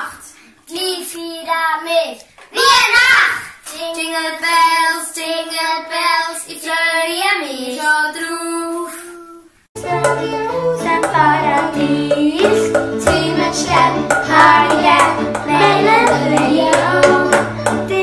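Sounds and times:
young children singing: 0:02.6 - 0:18.0
instrumental backing music: 0:09.8 - 0:18.0.

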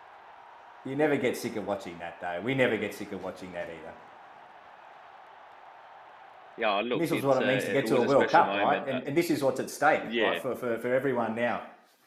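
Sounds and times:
stadium crowd cheering: 0:00.0 - 0:11.4.

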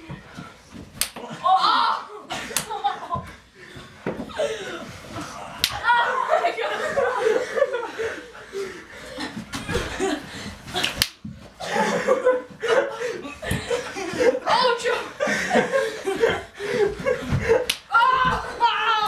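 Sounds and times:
sharp smacks: 0:01.0 - 0:01.2, 0:10.8 - 0:11.2
boys shouting: 0:01.2 - 0:02.3, 0:05.6 - 0:07.2, 0:14.3 - 0:15.2, 0:17.6 - 0:19.0
boys laughing: 0:01.2 - 0:19.0.

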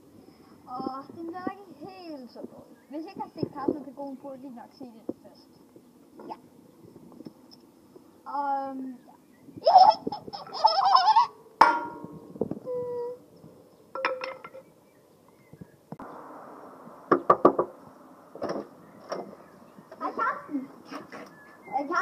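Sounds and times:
child squealing and laughing: 0:09.6 - 0:11.4.

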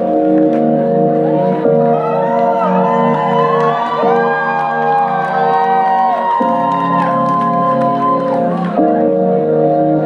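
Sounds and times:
electropop synthesizer chords: 0:00.0 - 0:10.0.

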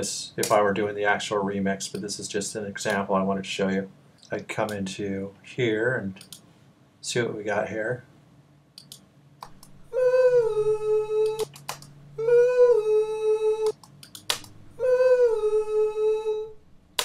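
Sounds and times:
short clicks: 0:08.8 - 0:09.8.

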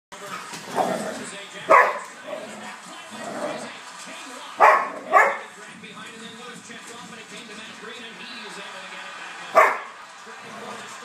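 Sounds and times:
dogs barking sharply: 0:01.7 - 0:02.1, 0:04.6 - 0:05.5, 0:09.5 - 0:10.0.

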